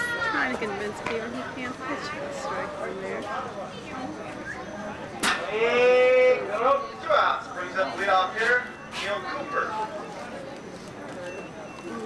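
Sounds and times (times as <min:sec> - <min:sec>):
faint crowd chatter: 0:00.0 - 0:12.0.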